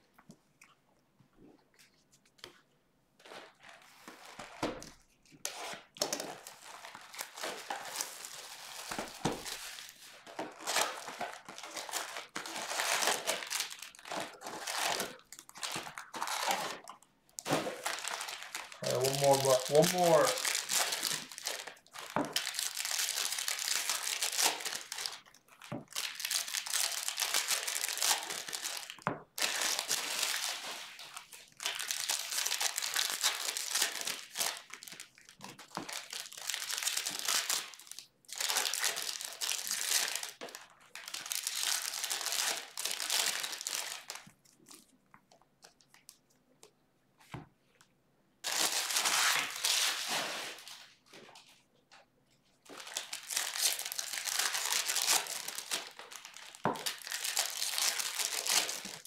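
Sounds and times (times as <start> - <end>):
foil wrappers crinkling: 3.2 - 44.9, 48.4 - 51.6, 52.6 - 59.0
brief voice: 18.8 - 20.4.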